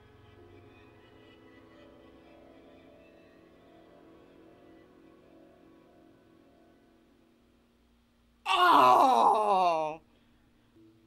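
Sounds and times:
woman wailing: 8.5s - 10.0s.

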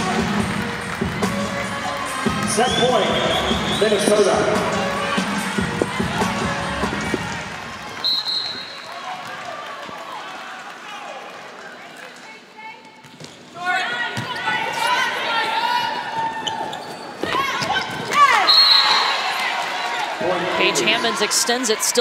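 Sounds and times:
gym crowd noise: 0.0s - 22.0s
referee whistle blast: 2.6s - 4.2s, 8.0s - 8.8s, 18.4s - 19.2s
sneakers squeaking on floor: 16.2s - 19.0s.

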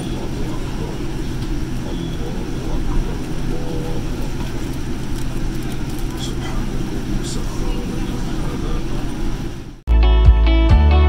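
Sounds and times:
faint voices: 0.0s - 9.8s
airliner cabin rumble: 0.0s - 9.9s.

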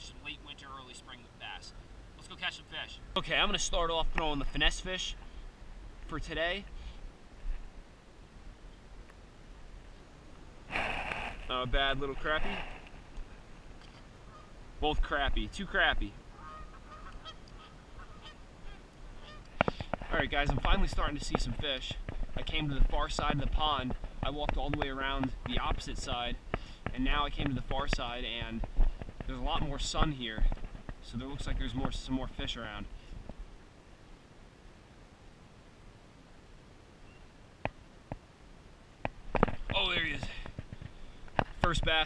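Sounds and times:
faint steady hiss: 0.0s - 42.0s
distant geese honking: 14.2s - 14.6s, 16.3s - 19.7s.

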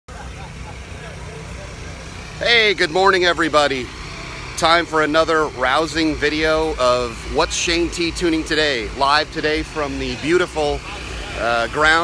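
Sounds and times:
faint distant voices: 0.1s - 4.4s
low engine rumble: 0.1s - 12.0s.

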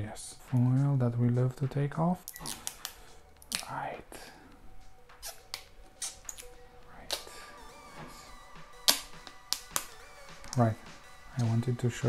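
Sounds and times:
plastic film peeling and crackling: 2.2s - 3.7s.

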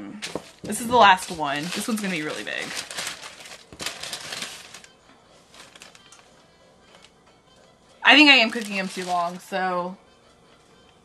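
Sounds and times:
paper crinkling and rustling: 0.2s - 6.3s, 8.2s - 9.4s.

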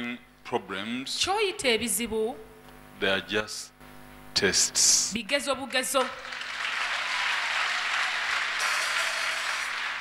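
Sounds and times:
crowd applauding: 6.0s - 10.0s.

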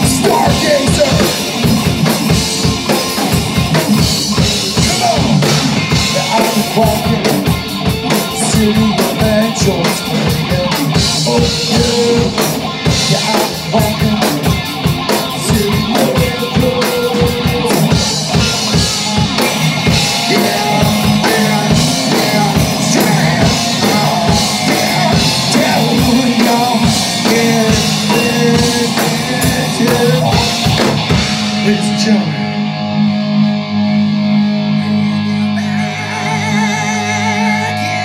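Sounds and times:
person singing: 0.0s - 1.7s, 4.3s - 19.2s, 19.8s - 32.7s, 34.7s - 38.0s
live rock band playing: 0.0s - 38.0s.

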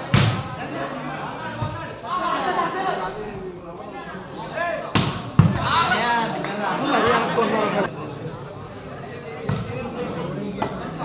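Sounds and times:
crowd shouting and talking: 0.0s - 11.0s
volleyball struck by hand: 0.1s - 0.5s, 4.9s - 5.7s.

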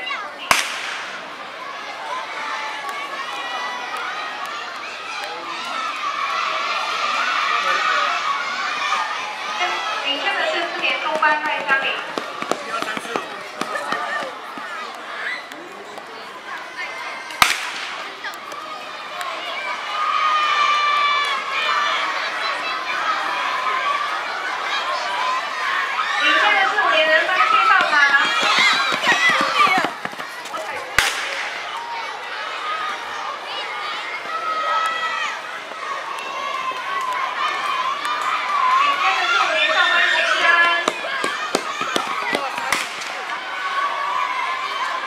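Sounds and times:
children shouting and cheering: 0.0s - 45.0s
starting pistol shot: 0.5s - 1.2s.

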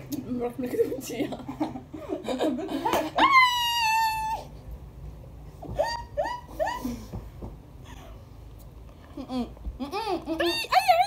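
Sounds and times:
woman shrieking: 3.2s - 4.5s, 10.4s - 11.0s.

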